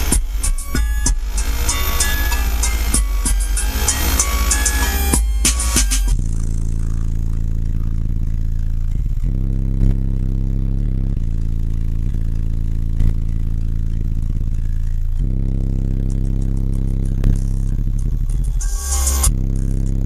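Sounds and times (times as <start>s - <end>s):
deep subwoofer bass notes: 0.0s - 20.0s.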